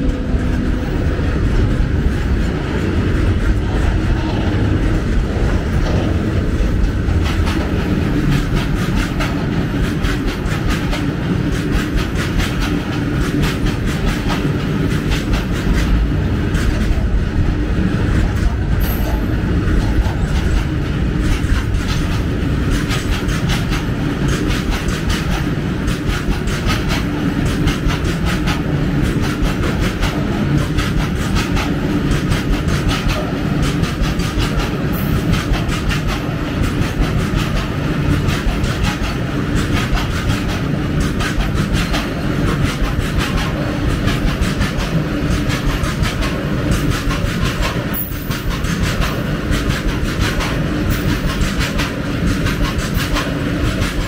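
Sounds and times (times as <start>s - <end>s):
freight train rumbling past: 0.0s - 54.0s
wheels clattering over rail joints: 18.0s - 54.0s.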